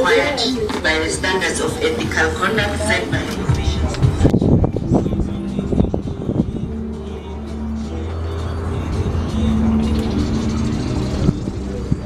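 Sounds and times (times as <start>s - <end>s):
music from a radio: 0.0s - 12.0s
steady low hum: 1.5s - 12.0s.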